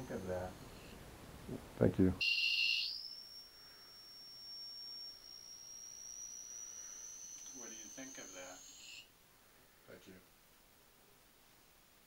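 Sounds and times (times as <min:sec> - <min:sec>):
thin high whine: 0:00.0 - 0:01.0, 0:02.2 - 0:09.2
electronic alarm beep: 0:02.2 - 0:09.1.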